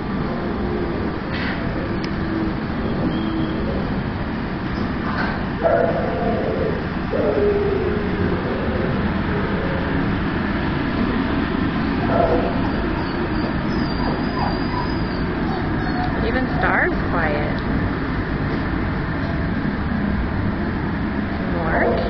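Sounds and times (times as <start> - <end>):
steady background rumble: 0.0 - 22.0
dogs barking: 5.1 - 9.1, 12.0 - 16.4.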